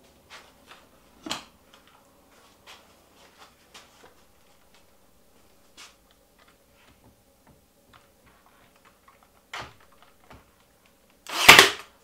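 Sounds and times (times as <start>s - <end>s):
brad nailer shot: 11.2s - 11.9s.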